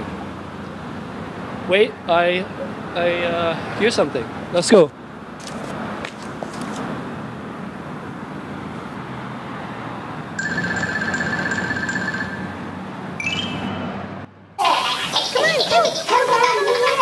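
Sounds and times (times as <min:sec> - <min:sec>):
cars passing: 0:00.0 - 0:17.0
short high beeps: 0:13.2 - 0:14.0.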